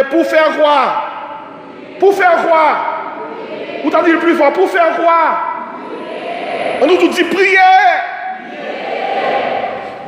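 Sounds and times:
congregation murmuring responses: 0.0s - 10.0s.

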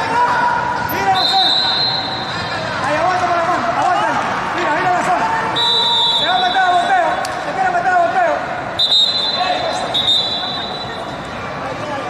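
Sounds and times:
spectators chattering in hall: 0.0s - 12.0s.

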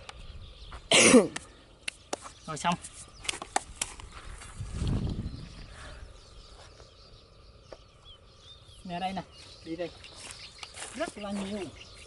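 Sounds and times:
faint high bird chirps: 0.0s - 1.0s, 4.6s - 12.0s
feet and shovel scuffing dirt: 0.7s - 5.1s, 9.4s - 12.0s.

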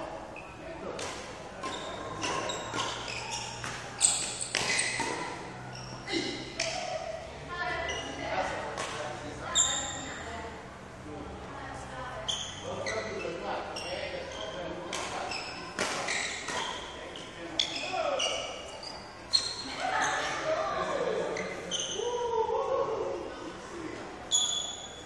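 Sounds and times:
shoe squeaks: 0.3s - 0.7s, 1.6s - 6.8s, 7.8s - 8.3s, 9.4s - 10.2s, 12.2s - 20.3s, 21.3s - 22.2s, 24.3s - 25.0s.

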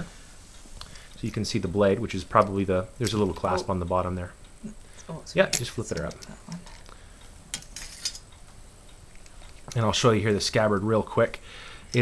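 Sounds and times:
brass fittings clinking: 5.5s - 8.3s.

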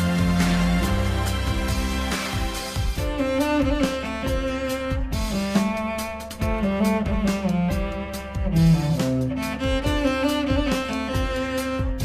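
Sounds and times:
backing track with percussion: 0.0s - 12.0s
bowed cello melody: 0.0s - 12.0s.

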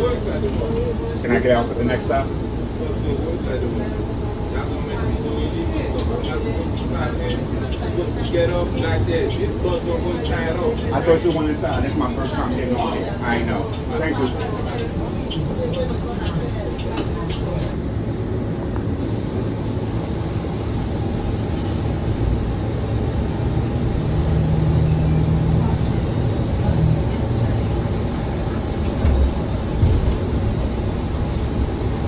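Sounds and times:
bus drivetrain rumble: 0.0s - 32.0s
road noise: 0.0s - 32.0s.

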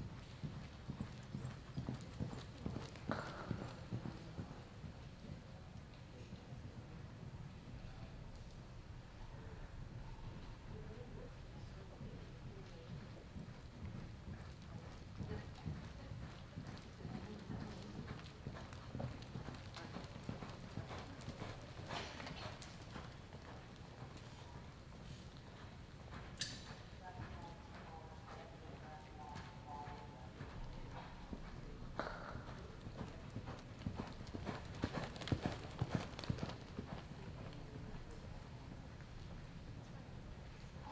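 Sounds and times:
horse hoofbeats on dirt: 0.0s - 5.4s, 12.8s - 38.2s.

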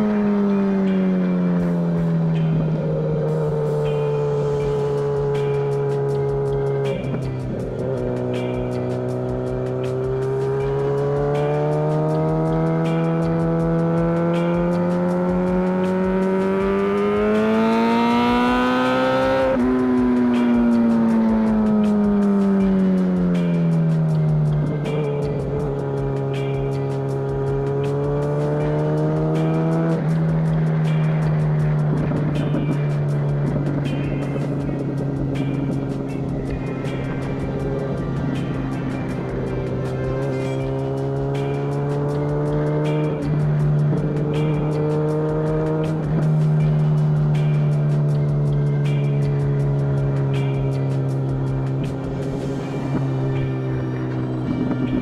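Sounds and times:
motorcycle engine revving: 0.0s - 55.0s
music beat: 0.0s - 55.0s.

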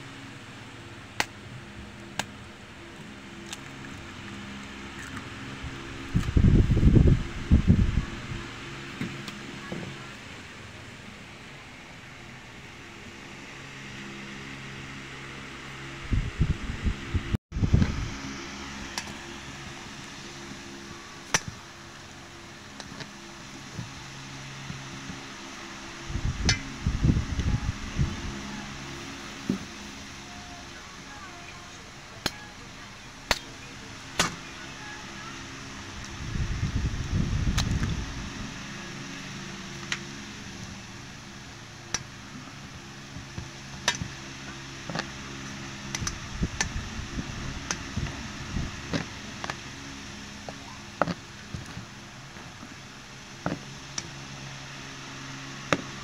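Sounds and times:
motor hum: 0.0s - 56.0s.

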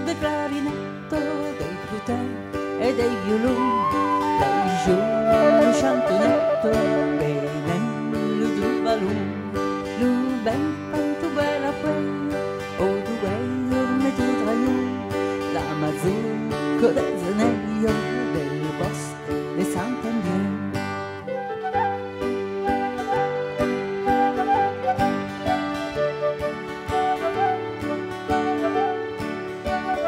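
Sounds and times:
acoustic guitar: 0.0s - 30.0s
flute: 3.2s - 8.9s, 21.2s - 30.0s.

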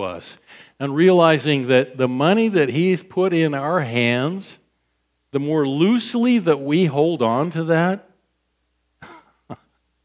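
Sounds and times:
sharp cough: 9.0s - 9.7s
person clearing throat: 9.0s - 9.8s.

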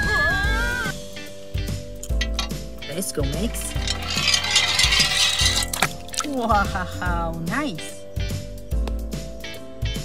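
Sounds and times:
toy car rattling down a slide: 3.3s - 6.4s
toy dropping into water: 3.4s - 6.6s.

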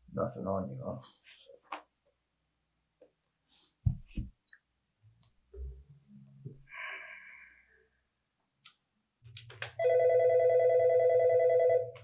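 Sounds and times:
telephone ringing with warble: 9.8s - 12.0s.

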